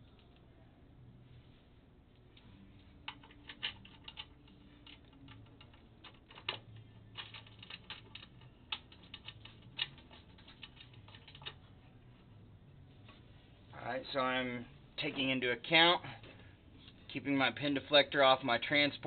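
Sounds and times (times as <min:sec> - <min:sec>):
metal clicks and taps: 0:02.4 - 0:11.7.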